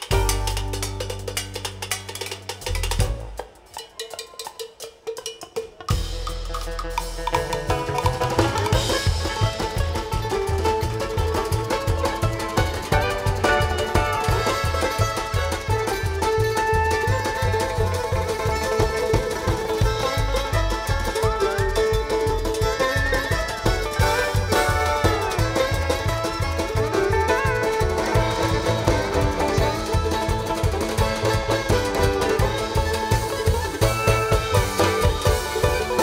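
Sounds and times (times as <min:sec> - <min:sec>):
upright bass: 0:00.0 - 0:03.4, 0:05.9 - 0:36.0
mandolin: 0:00.0 - 0:04.6, 0:05.9 - 0:36.0
banjo: 0:00.0 - 0:36.0
drums: 0:00.0 - 0:36.0
fiddle: 0:06.4 - 0:36.0.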